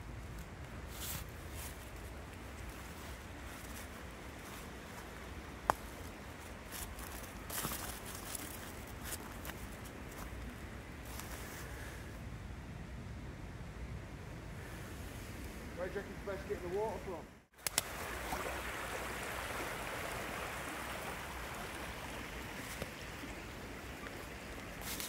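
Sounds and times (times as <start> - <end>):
footsteps on dry leaves: 0.9 - 5.2, 5.8 - 11.6, 24.7 - 25.0.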